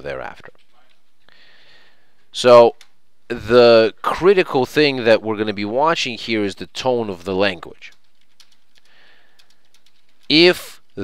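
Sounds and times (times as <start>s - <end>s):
steady low hiss: 0.0s - 11.0s.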